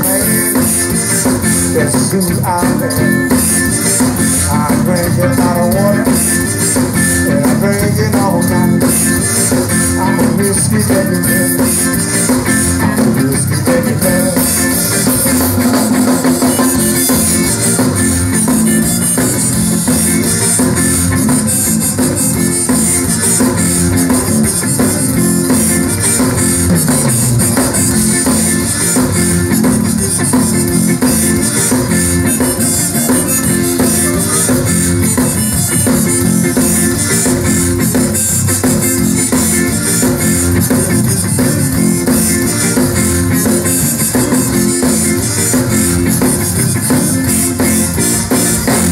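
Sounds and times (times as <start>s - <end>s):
drum kit beat: 0.0s - 48.9s
electric guitar: 0.0s - 48.9s
piano accordion: 11.6s - 48.9s.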